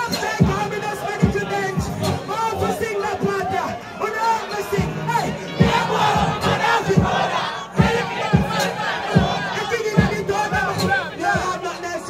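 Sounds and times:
amplified voice on microphone: 0.0 - 12.0
crowd shouting and chanting: 0.0 - 12.0
deep thumps: 5.6 - 10.7.

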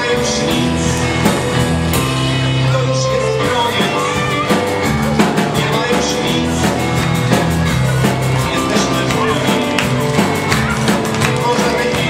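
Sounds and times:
drum kit: 0.0 - 12.0
guitar: 0.0 - 12.0
keyboard: 0.0 - 12.0.

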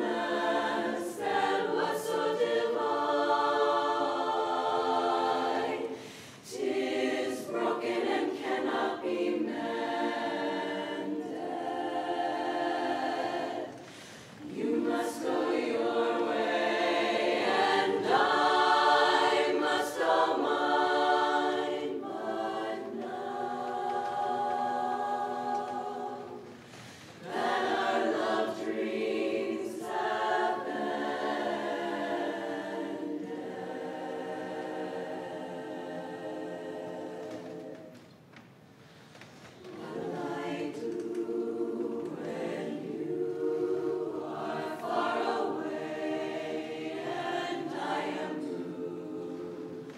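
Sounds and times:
women's chorus singing a cappella: 0.0 - 38.2, 38.8 - 49.9
singers breathing: 5.9 - 6.4, 13.8 - 14.4, 26.6 - 27.2, 38.8 - 39.5.

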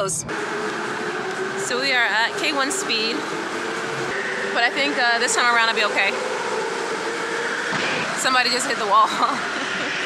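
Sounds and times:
electric go-kart motors whirring: 0.0 - 10.0.

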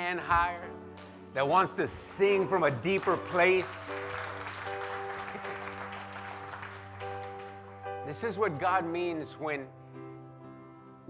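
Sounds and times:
congregation applauding: 1.9 - 8.2.

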